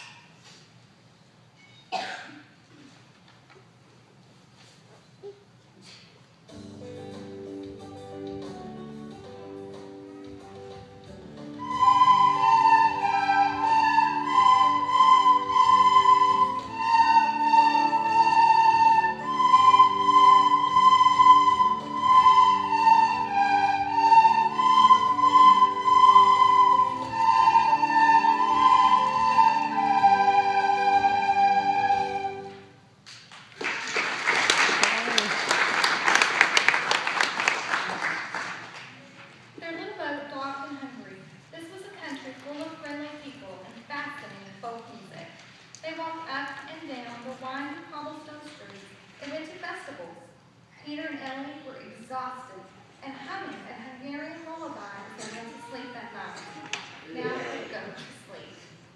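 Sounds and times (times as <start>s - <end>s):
children playing recorders: 11.5s - 32.8s
applause: 33.1s - 39.2s.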